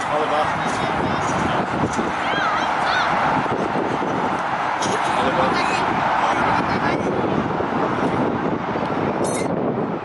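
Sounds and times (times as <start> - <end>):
distant indistinct voices: 0.0 - 7.3
steady outdoor noise: 0.0 - 10.0.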